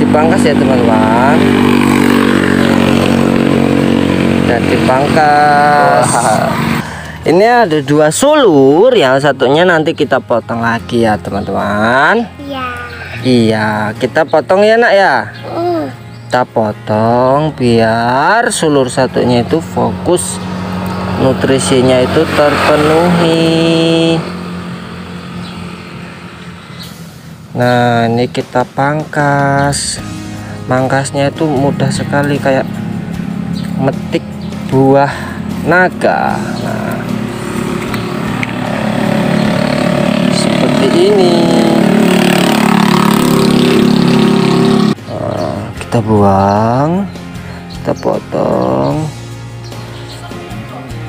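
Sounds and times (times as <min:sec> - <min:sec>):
small engine running steadily: 0:00.0 - 0:07.9, 0:14.6 - 0:28.1, 0:28.8 - 0:51.0
motor vehicle passing: 0:00.0 - 0:51.0.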